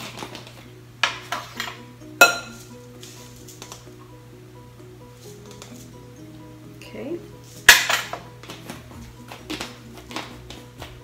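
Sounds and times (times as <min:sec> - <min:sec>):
soft background music: 0:00.0 - 0:11.0
metal utensils clinking on dishes: 0:01.0 - 0:02.7, 0:07.7 - 0:08.3.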